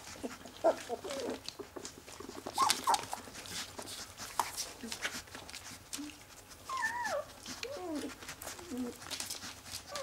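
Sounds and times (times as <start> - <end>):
puppy whimpering: 0.0 - 1.6, 2.2 - 3.6, 5.9 - 10.0.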